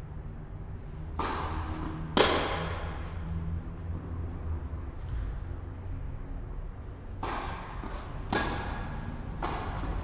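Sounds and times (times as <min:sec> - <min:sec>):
tennis ball hit by racket: 0:01.1 - 0:03.0, 0:07.1 - 0:10.0.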